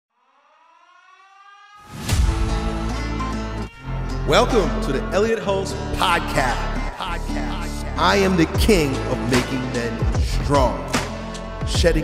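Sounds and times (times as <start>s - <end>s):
rising siren-like tone: 0.1s - 5.6s.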